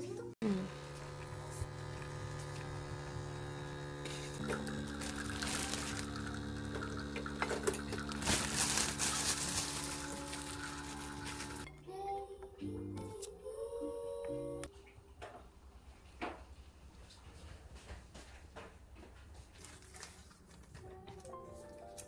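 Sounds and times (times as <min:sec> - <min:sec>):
coffee machine pump humming: 0:00.4 - 0:11.7
coffee streaming into metal pitcher: 0:00.7 - 0:11.7.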